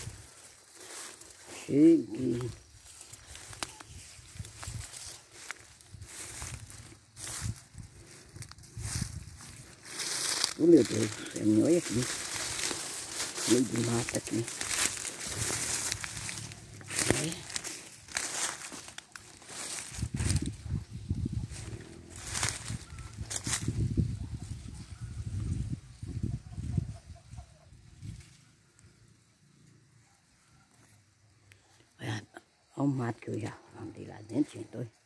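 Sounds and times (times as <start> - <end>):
dry grass and brush rustling: 0.0 - 35.0.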